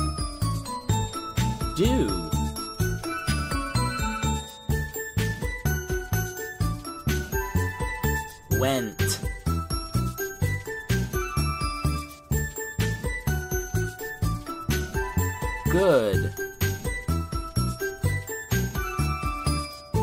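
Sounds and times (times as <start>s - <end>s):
upbeat children's music: 0.0s - 20.0s.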